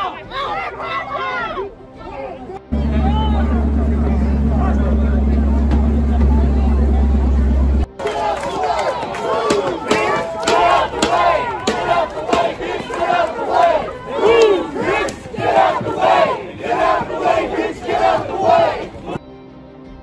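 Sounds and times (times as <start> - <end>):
crowd shouting: 0.0 - 19.2.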